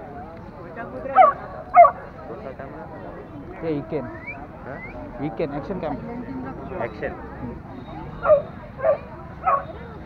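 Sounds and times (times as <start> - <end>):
dog barking: 1.2 - 2.0, 8.2 - 9.8.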